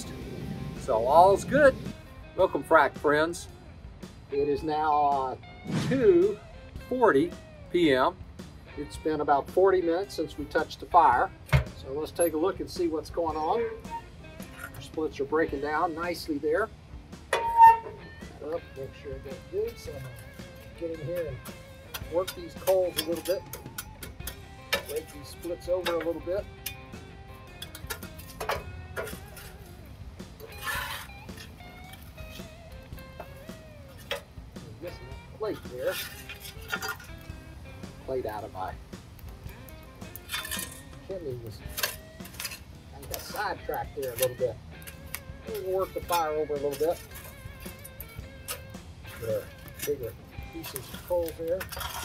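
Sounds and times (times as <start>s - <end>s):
background music: 0.0s - 52.0s
shovel clanking on steel: 17.3s - 29.6s, 33.9s - 37.3s, 39.5s - 52.0s.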